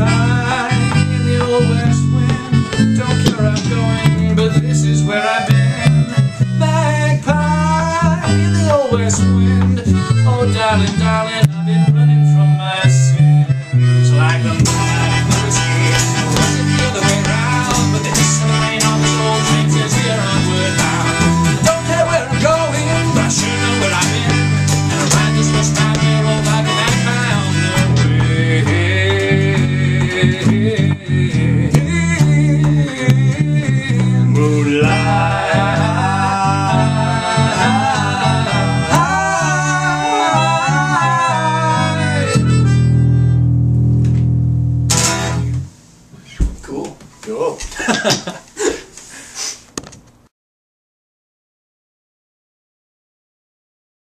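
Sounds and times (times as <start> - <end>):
melodica melody: 0.0 - 32.5, 33.1 - 45.7
electric bass: 0.0 - 45.8
acoustic guitar: 0.0 - 46.0.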